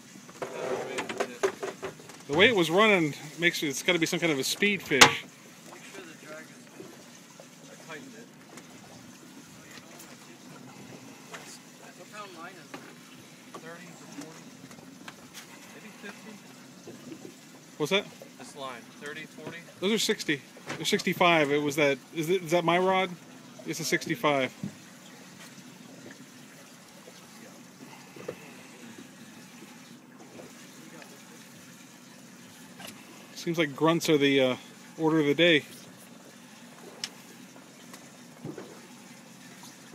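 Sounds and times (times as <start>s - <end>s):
water washing against hull: 0.0s - 39.9s
people talking: 2.3s - 5.2s, 17.8s - 24.6s, 33.4s - 35.7s.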